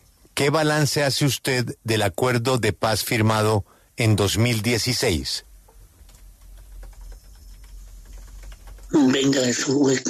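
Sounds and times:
person speaking: 0:00.4 - 0:05.4, 0:08.9 - 0:10.0.

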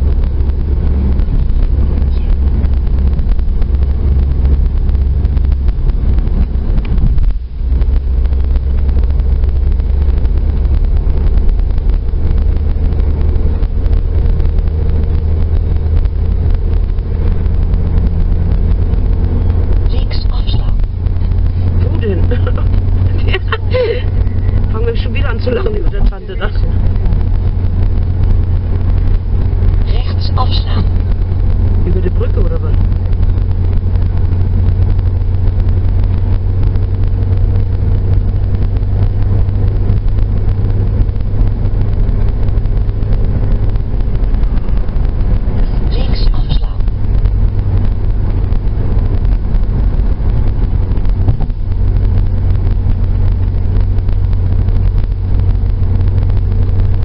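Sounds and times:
car engine and road drone: 0:00.0 - 0:57.0
person speaking: 0:19.9 - 0:27.2, 0:29.8 - 0:31.1.

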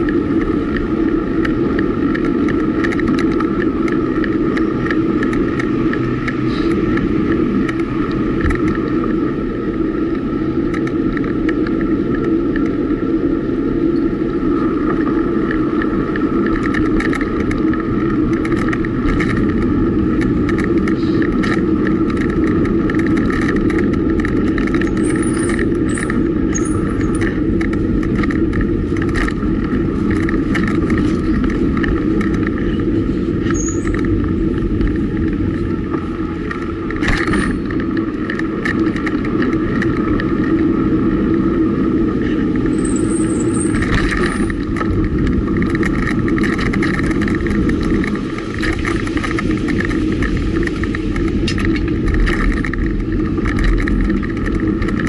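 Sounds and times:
bike clicks and rattles: 0:00.0 - 0:55.0
wind and road noise: 0:00.0 - 0:55.0.

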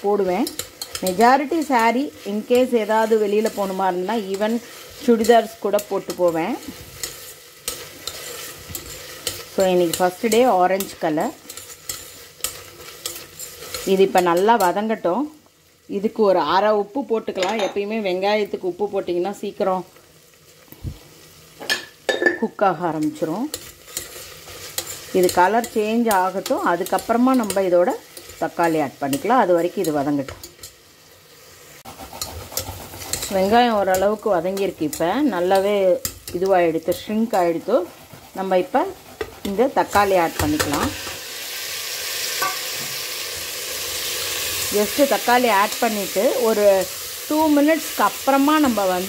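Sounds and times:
onions sizzling in oil: 0:00.0 - 0:49.0
spoon stirring: 0:00.2 - 0:14.5, 0:23.5 - 0:30.8, 0:31.8 - 0:40.7
ladle scraping and clinking pot: 0:31.9 - 0:33.5, 0:42.4 - 0:42.9.

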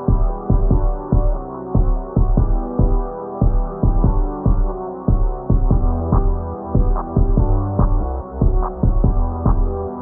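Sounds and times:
punchy kick drums: 0:00.0 - 0:09.9
held synth chords: 0:00.0 - 0:10.0
deep sub-bass: 0:03.8 - 0:10.0.

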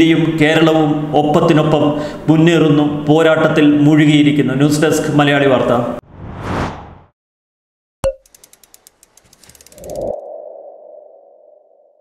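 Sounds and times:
quick ticks: 0:08.2 - 0:10.2.

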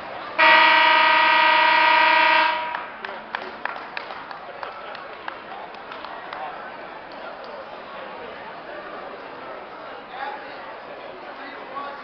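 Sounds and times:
scoreboard horn blast: 0:00.4 - 0:03.0.

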